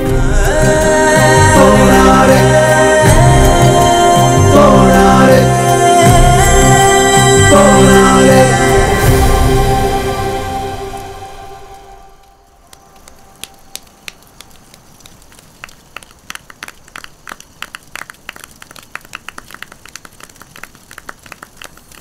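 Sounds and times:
bonfire crackling and popping: 12.5s - 22.0s.

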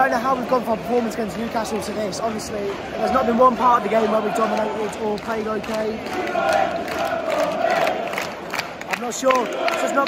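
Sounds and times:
crowd chanting: 2.7s - 8.6s, 9.2s - 10.0s.

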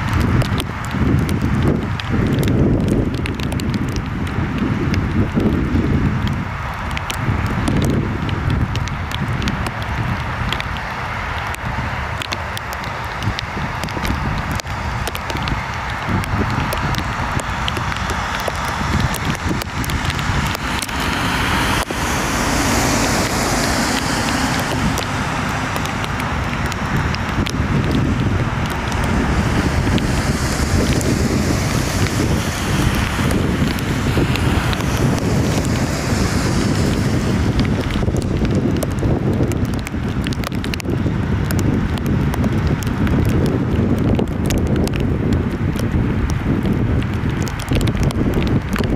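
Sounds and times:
wind buffeting microphone: 0.0s - 48.9s
jet engines running: 8.7s - 40.8s.

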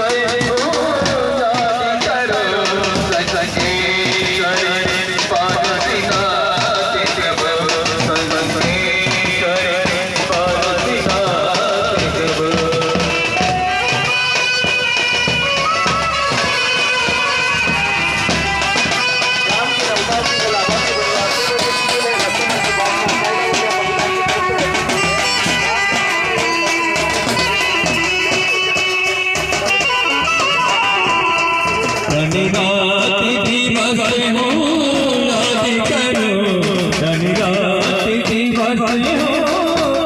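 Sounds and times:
reedy lead melody: 0.0s - 40.0s
steady drum beat: 0.0s - 40.0s.

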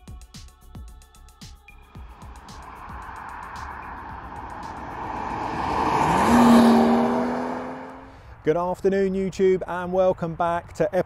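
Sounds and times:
car driving past: 2.0s - 8.2s.

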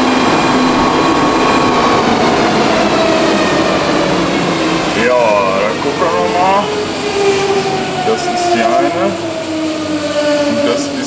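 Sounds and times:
steady machine hum: 0.0s - 8.0s
held humming tone: 0.0s - 10.7s.

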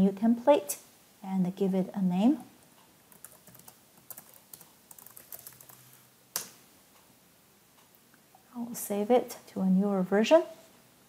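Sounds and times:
keyboard typing clicks: 3.1s - 5.8s.

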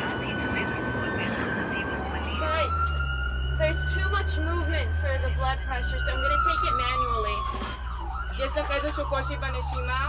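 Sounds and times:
voices: 0.0s - 2.9s
ambulance siren wailing: 0.0s - 10.0s
engine and road drone: 0.0s - 10.0s.

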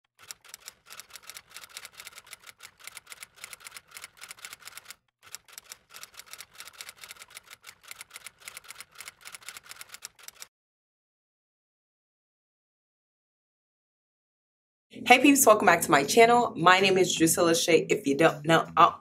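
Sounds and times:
rapid keyboard key clicks: 0.2s - 10.5s.

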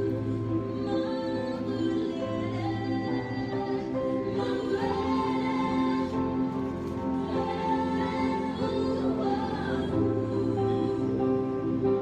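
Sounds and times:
choir singing gospel music: 0.0s - 12.0s.

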